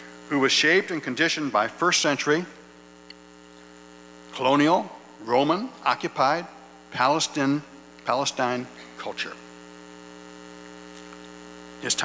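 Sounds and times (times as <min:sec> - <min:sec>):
electrical mains hum: 0:00.0 - 0:12.0
man speaking: 0:00.3 - 0:02.6, 0:04.3 - 0:09.5, 0:11.8 - 0:12.0.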